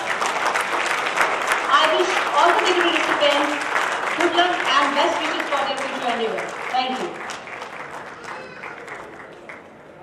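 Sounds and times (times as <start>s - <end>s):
audience applause: 0.0s - 10.0s
voices in a hall: 0.0s - 10.0s.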